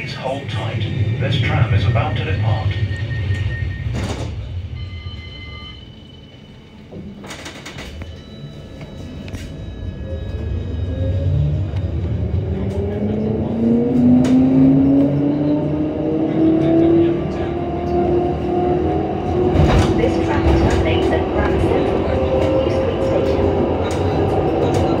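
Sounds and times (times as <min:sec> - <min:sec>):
wheels rumbling on rails: 0:00.0 - 0:25.0.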